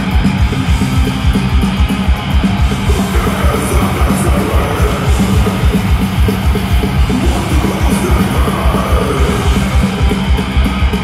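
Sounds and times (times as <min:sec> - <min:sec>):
distorted electric guitars: 0:00.0 - 0:11.0
rapid pounding kick drum: 0:00.0 - 0:11.0.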